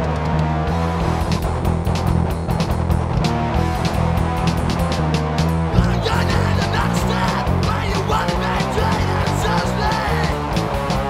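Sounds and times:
bass guitar: 0:00.0 - 0:11.0
distorted electric guitar: 0:00.0 - 0:11.0
drums with cymbal and snare: 0:01.0 - 0:11.0.

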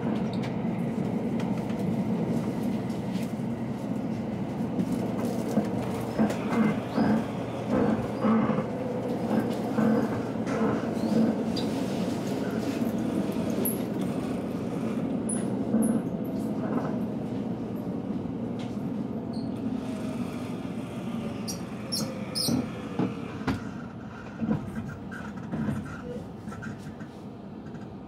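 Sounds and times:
train car low rumble: 0:00.0 - 0:28.0.

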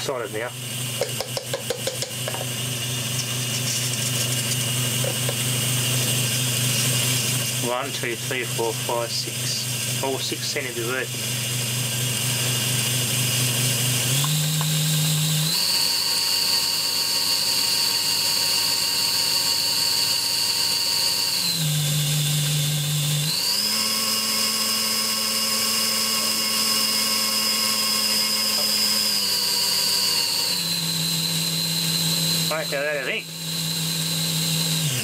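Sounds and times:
small motor whining: 0:00.0 - 0:35.0.

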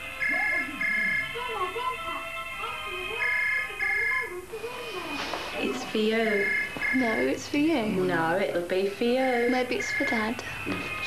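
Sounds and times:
soft background music: 0:00.0 - 0:11.0
landline telephone ringing: 0:00.1 - 0:04.3, 0:05.7 - 0:07.8, 0:09.3 - 0:11.0.

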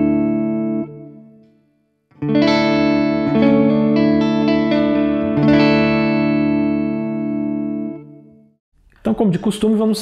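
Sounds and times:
electric guitar chord ringing: 0:00.0 - 0:08.5.

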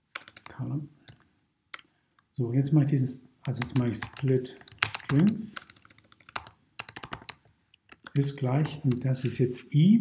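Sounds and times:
computer keyboard typing: 0:00.1 - 0:01.2, 0:03.4 - 0:09.5.

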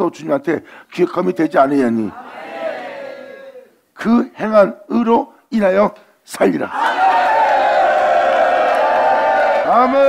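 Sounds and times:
congregation shouting together: 0:02.1 - 0:03.8.

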